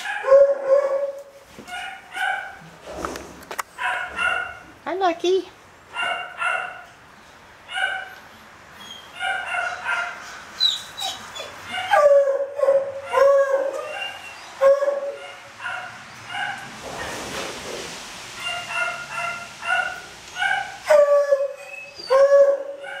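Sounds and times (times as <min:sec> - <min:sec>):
dog barking: 0:00.0 - 0:02.6, 0:03.8 - 0:04.6, 0:05.9 - 0:06.9, 0:09.2 - 0:10.2, 0:14.8 - 0:16.7, 0:18.4 - 0:21.1, 0:22.6 - 0:23.0.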